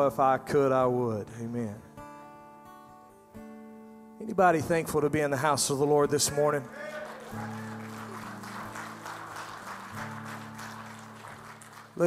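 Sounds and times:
worship band chords: 6.5 - 12.0.

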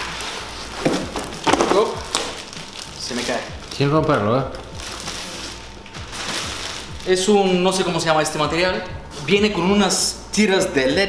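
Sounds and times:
rustling handling noise: 0.0 - 8.5.

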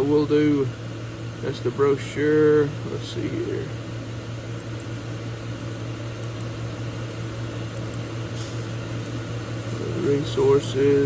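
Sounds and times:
machinery humming and hissing: 0.0 - 11.0.

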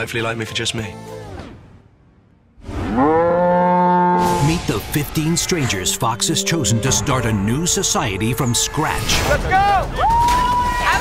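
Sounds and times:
cow mooing: 2.8 - 4.4.

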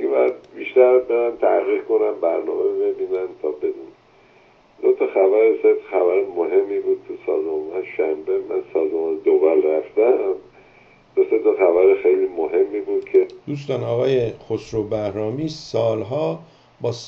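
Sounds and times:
person speaking over phone line: 0.0 - 3.9, 4.8 - 10.5, 11.2 - 17.0
faint steady tone: 0.0 - 17.0.

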